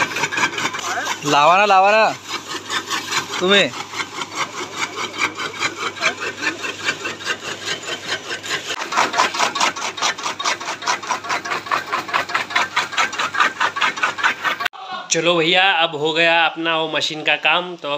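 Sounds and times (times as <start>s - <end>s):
chaff cutter chopping stalks: 0.0s - 14.7s.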